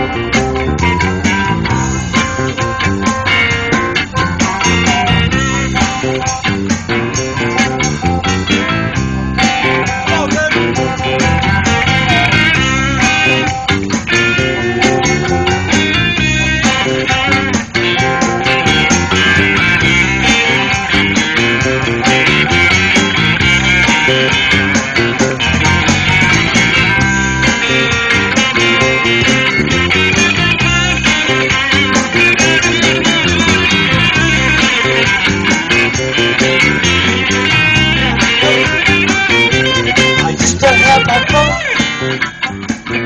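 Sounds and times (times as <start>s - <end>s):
blues-rock band playing: 0.0s - 43.0s
wavering electric guitar lead: 0.0s - 43.0s.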